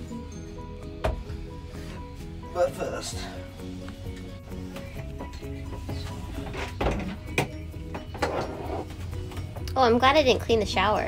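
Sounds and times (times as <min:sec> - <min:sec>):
melodic background music: 0:00.0 - 0:11.0.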